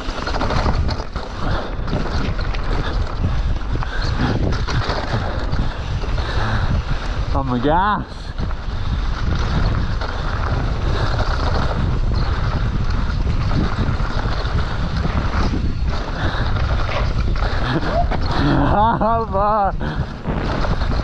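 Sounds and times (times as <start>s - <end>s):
bike knocking over bumps: 0.0s - 7.1s, 19.9s - 21.0s
bike tyres rolling over dirt: 0.0s - 21.0s
wind rushing on microphone: 0.0s - 21.0s.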